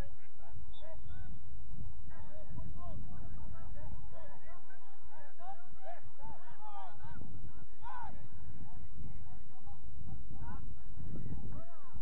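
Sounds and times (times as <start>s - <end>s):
wind rumble on microphone: 7.0s - 12.0s.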